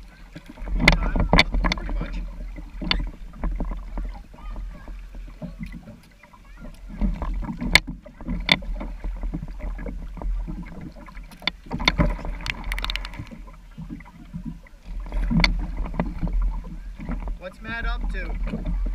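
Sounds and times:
kayak paddle splashing water: 0:00.0 - 0:18.9.

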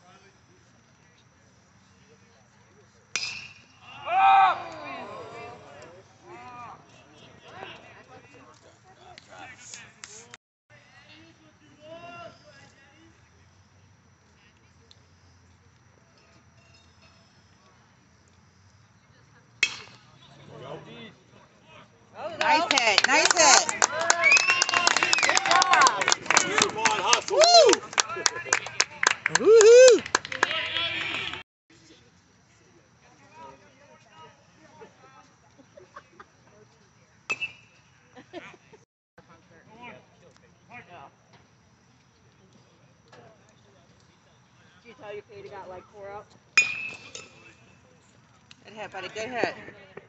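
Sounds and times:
ballpark background: 0:00.0 - 0:50.0
baseball bat cracking ball: 0:03.2 - 0:03.6, 0:19.6 - 0:20.1
crowd shouting: 0:03.8 - 0:07.8, 0:22.2 - 0:28.5, 0:29.2 - 0:31.4.

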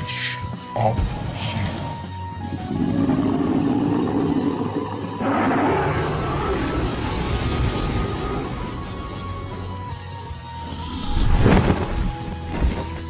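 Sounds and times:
background music: 0:00.0 - 0:13.0
dragon roar: 0:01.2 - 0:09.0.

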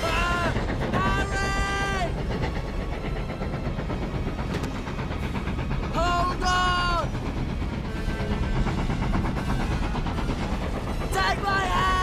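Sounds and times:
steam locomotive rumbling: 0:00.0 - 0:12.0.

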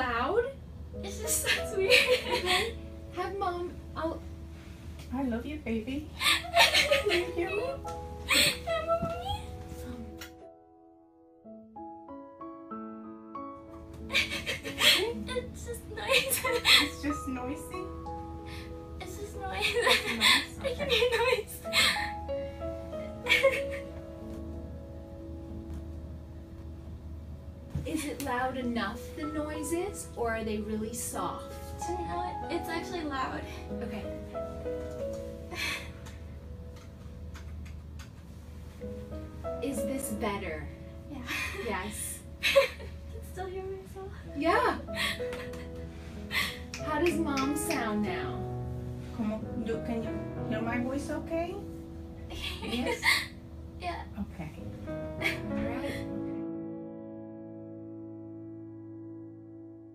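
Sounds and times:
soft background music: 0:00.0 - 0:59.9.

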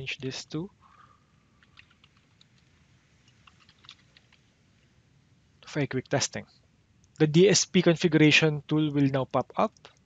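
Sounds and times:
faint keyboard typing: 0:01.0 - 0:04.6.

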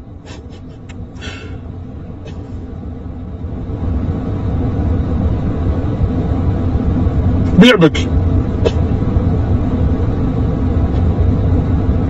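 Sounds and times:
road rumble inside car: 0:00.0 - 0:12.0.

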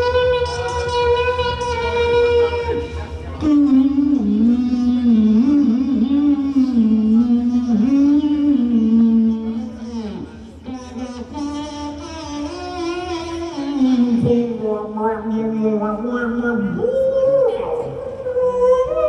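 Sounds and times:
amplified voice wavering tone: 0:00.0 - 0:19.0.

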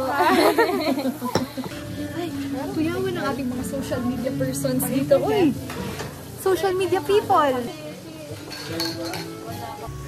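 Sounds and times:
room noise hiss: 0:00.0 - 0:10.0
voices of small group: 0:00.0 - 0:10.0.

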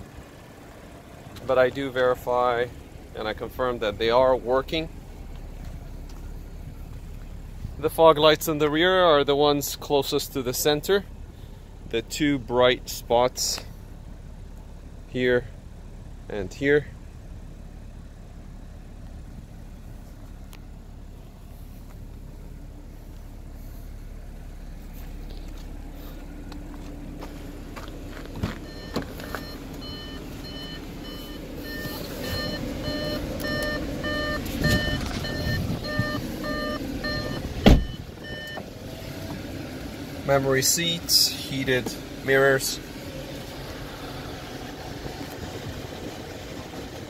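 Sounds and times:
car engine idling: 0:00.0 - 0:47.0
car door shutting: 0:27.8 - 0:39.6
car warning chime beeping: 0:28.6 - 0:38.7.

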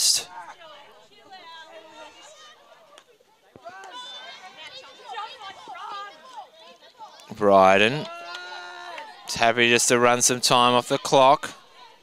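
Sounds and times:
voices calling and shouting: 0:00.0 - 0:12.0.

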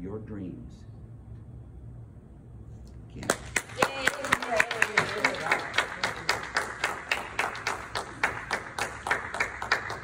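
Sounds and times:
audience applauding: 0:03.3 - 0:10.0.

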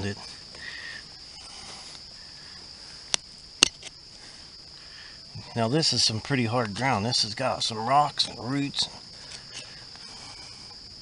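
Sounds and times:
high insect chorus: 0:00.0 - 0:11.0
metal digger striking stones: 0:03.1 - 0:03.9.

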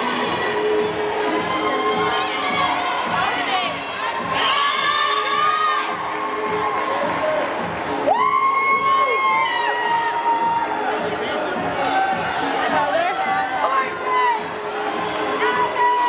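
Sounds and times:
crowd cheering and shouting: 0:00.0 - 0:16.0.

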